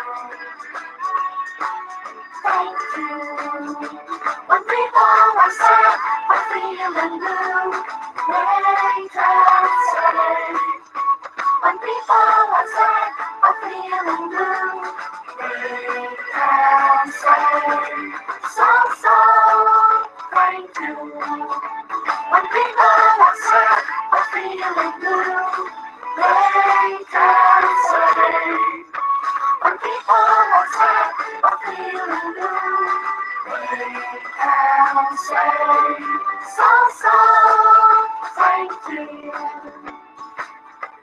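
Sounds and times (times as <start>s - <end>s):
woman singing: 2.5s - 10.8s, 11.6s - 21.6s.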